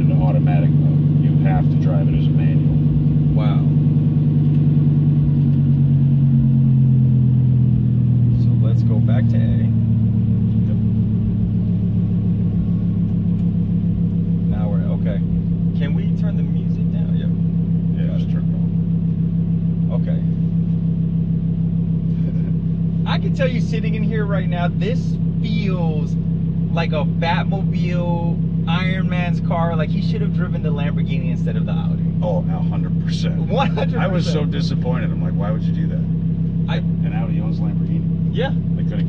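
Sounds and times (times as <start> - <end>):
car engine idling: 0.0 - 39.0.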